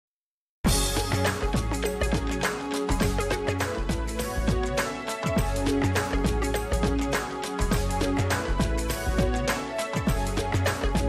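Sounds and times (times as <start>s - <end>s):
theme music with drum beat: 0.7s - 11.0s.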